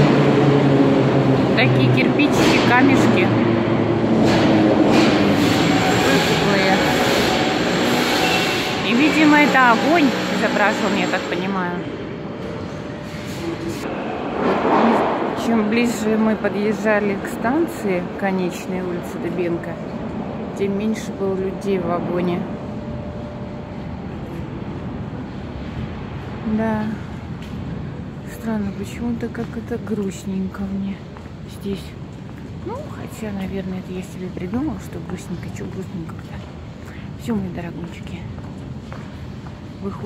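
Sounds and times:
train rumble with electric hum: 0.0 - 40.0.

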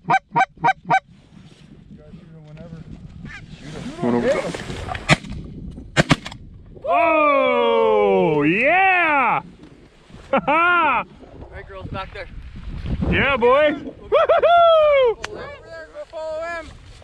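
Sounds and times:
geese honking: 0.0 - 1.0
shotgun shots: 6.0 - 6.4
man whooping loudly: 6.8 - 9.4, 14.1 - 15.2.

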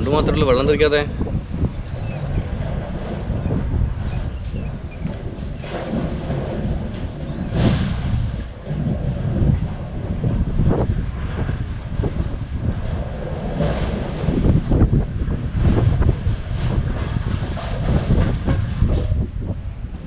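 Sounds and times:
blowhole low rumble: 0.0 - 20.0
surges of rushing air: 0.0 - 20.0.

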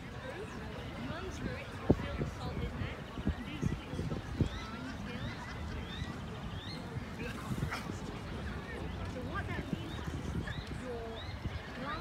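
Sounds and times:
indistinct chatter: 0.0 - 12.0.

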